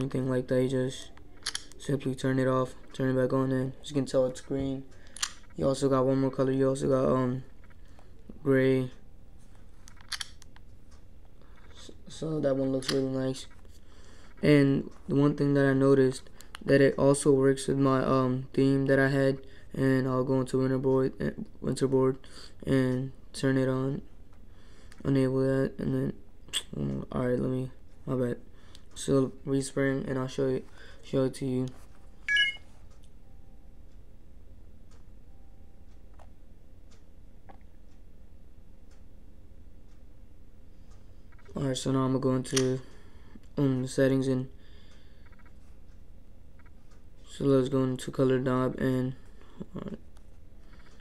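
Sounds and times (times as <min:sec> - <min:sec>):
low steady hiss: 0:00.0 - 0:51.0
faint ticks and clicks: 0:07.4 - 0:17.1, 0:34.8 - 0:38.1, 0:40.8 - 0:51.0
device button clicks: 0:32.3 - 0:32.6
high electronic beep: 0:32.3 - 0:32.6.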